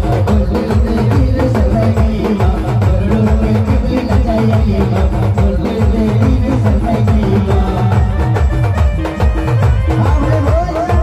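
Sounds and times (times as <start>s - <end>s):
drums beating a fast rhythm: 0.0s - 11.0s
electronic keyboard melody: 0.0s - 11.0s.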